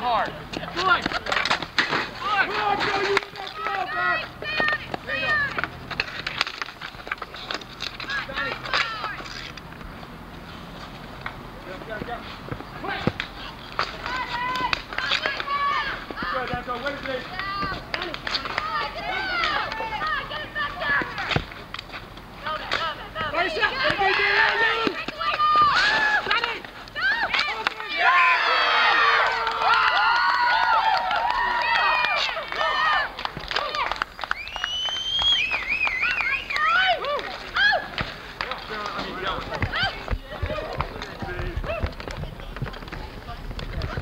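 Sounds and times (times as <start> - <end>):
players shouting: 0.0 - 6.4, 7.4 - 9.3, 11.6 - 21.5, 22.3 - 44.0
sticks clacking on ball and pavement: 0.0 - 29.8, 31.6 - 44.0.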